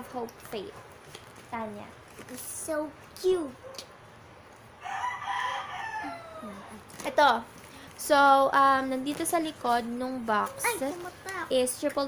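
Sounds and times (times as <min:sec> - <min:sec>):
rooster crowing: 0:04.8 - 0:06.8.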